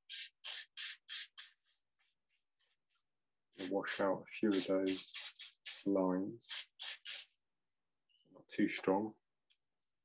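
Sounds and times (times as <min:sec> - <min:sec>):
paintbrush dabbing on paper: 0:00.0 - 0:07.4.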